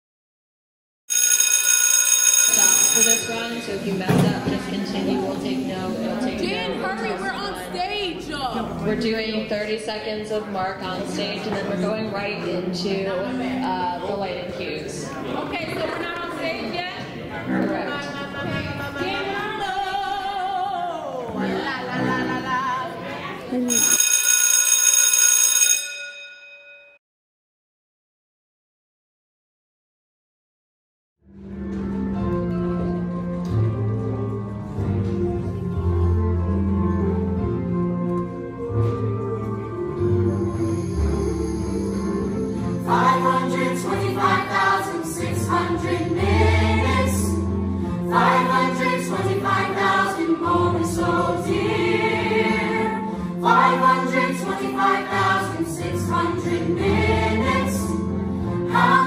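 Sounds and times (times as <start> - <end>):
electric bell ringing: 1.1 - 4.0, 23.7 - 27.0.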